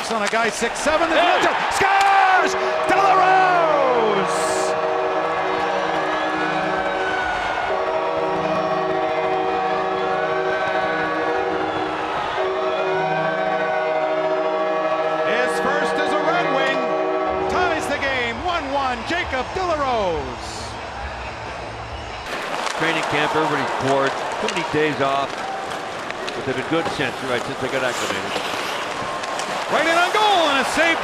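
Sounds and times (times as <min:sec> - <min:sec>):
goal horn sounding a chord: 0:02.3 - 0:06.8, 0:07.6 - 0:18.6.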